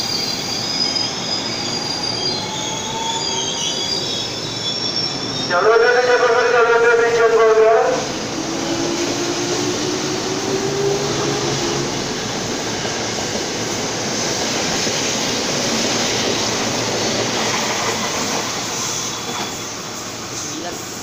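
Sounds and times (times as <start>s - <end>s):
train wheels running: 0.0s - 21.0s.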